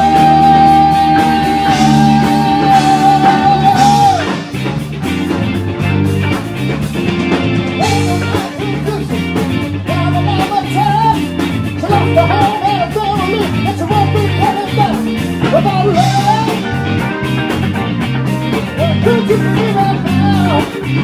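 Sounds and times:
live rock band playing: 0:00.0 - 0:21.0.

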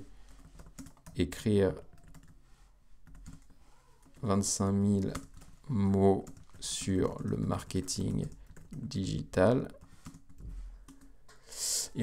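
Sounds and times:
typing on keyboard: 0:00.3 - 0:01.2, 0:01.8 - 0:02.4, 0:03.0 - 0:11.2.

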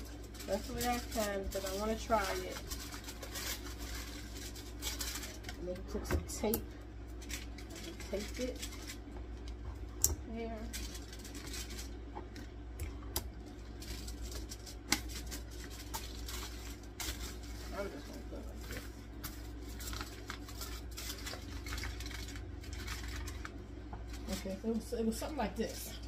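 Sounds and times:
aluminum foil crinkling: 0:00.0 - 0:12.6, 0:13.3 - 0:26.0
steady low hum: 0:00.0 - 0:26.0.

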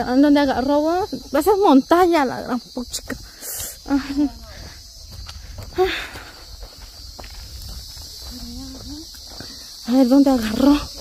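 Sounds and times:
high insect drone: 0:00.0 - 0:11.0
footsteps on dirt and leaves: 0:04.0 - 0:11.0.

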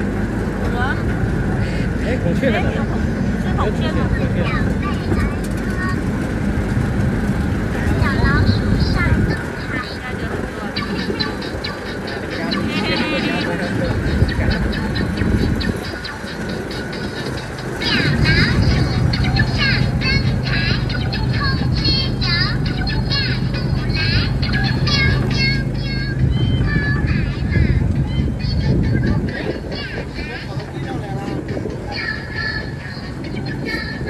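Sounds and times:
steady low rumble: 0:00.0 - 0:34.0.

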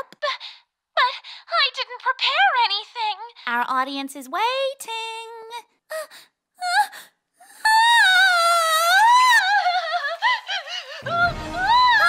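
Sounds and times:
cartoon girl crying: 0:05.9 - 0:10.7.

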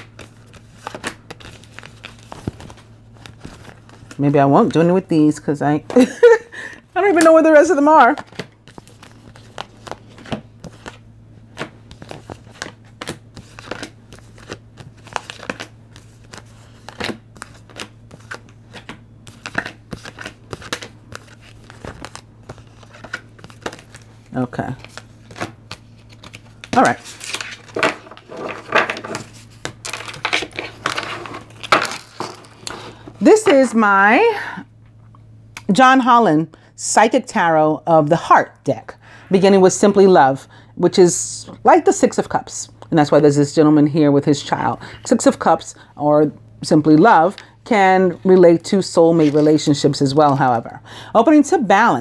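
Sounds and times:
low steady hum: 0:00.0 - 0:52.0
cards shuffling on a table: 0:08.1 - 0:24.1, 0:24.7 - 0:33.6.

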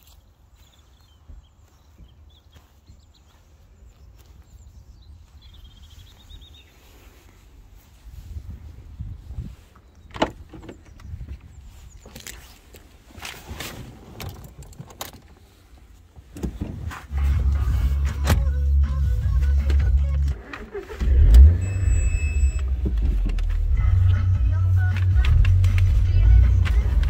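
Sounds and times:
wind rumbling on microphone: 0:03.9 - 0:15.3
car engine surging and idling: 0:17.1 - 0:27.0.

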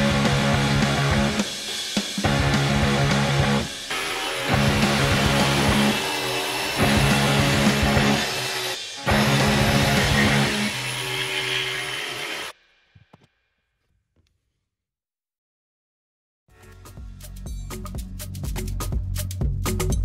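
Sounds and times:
rock music with electric guitar: 0:00.0 - 0:06.0, 0:06.8 - 0:10.7.

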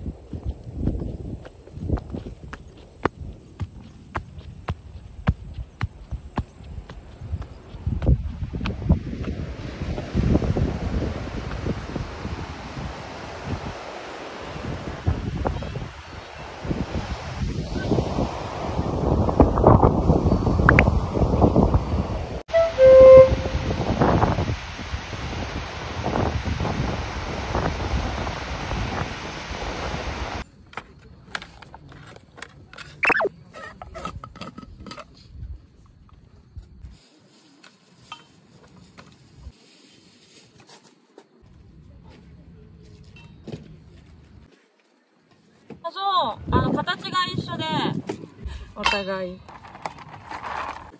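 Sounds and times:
wind buffeting microphone: 0:00.0 - 0:30.4, 0:46.4 - 0:50.3
short pitched sound: 0:22.5 - 0:23.6
surf breaking on beach: 0:22.5 - 0:30.4.

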